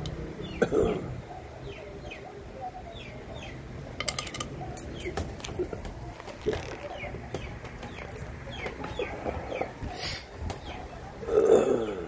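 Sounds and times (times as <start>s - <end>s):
birds chirping: 4.5s - 5.8s, 6.6s - 12.0s.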